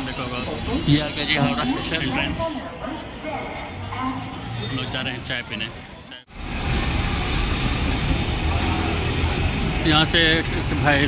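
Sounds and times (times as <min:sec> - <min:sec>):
city street traffic: 0:00.0 - 0:11.0
bus engine running: 0:06.3 - 0:11.0.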